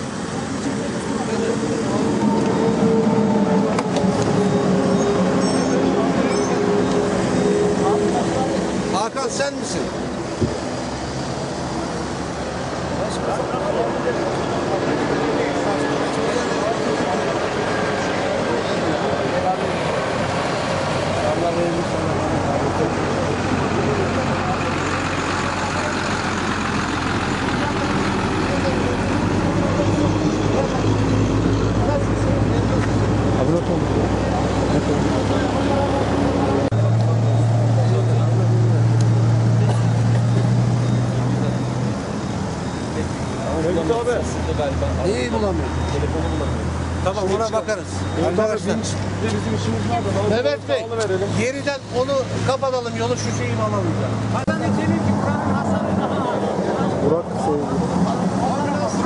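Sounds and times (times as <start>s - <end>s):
people talking indistinctly: 0.0s - 59.0s
road traffic: 0.0s - 59.0s
truck engines running: 0.0s - 59.0s.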